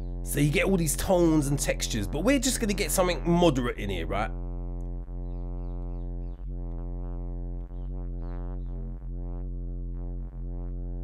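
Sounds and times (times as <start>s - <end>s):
deep distorted synth bass note: 0.0s - 11.0s.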